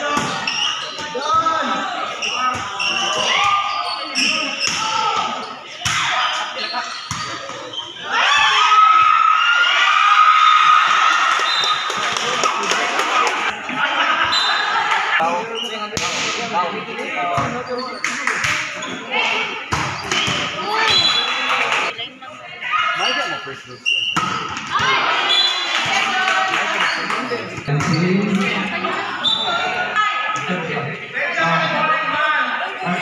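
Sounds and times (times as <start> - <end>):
people shouting and calling: 0.0 - 15.6, 24.2 - 27.5.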